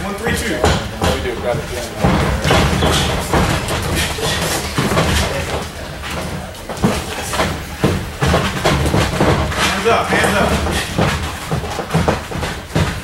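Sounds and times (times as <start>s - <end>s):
feet on canvas: 0.2s - 13.0s.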